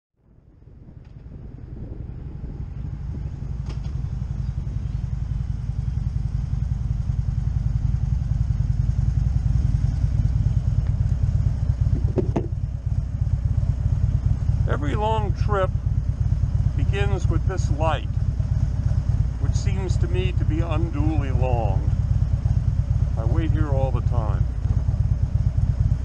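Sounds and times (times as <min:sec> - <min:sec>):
motorcycle engine rumble: 0:00.2 - 0:26.0.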